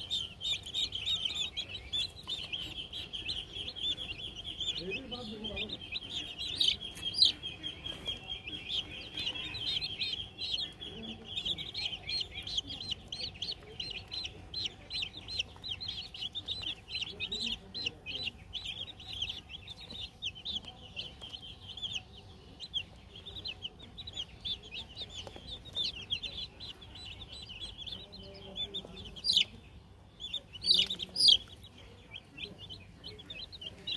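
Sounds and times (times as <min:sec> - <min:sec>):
chicks peeping: 0:00.0 - 0:33.9.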